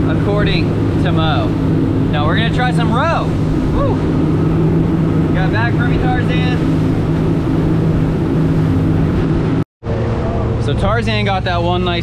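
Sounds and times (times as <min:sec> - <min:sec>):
outboard engines humming: 0:00.0 - 0:12.0
wind and water rushing: 0:00.0 - 0:12.0.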